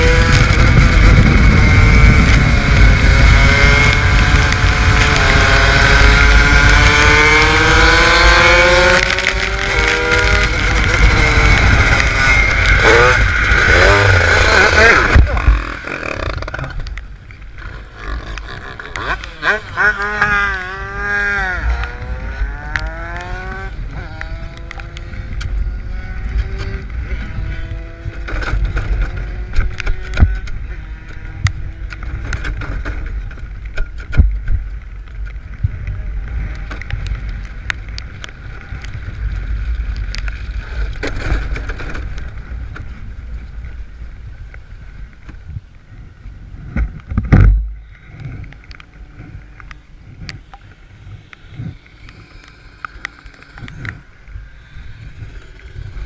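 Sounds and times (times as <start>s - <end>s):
wind buffeting microphone: 0.0s - 17.8s, 19.3s - 56.0s
pitched whine sliding down: 47.4s - 56.0s.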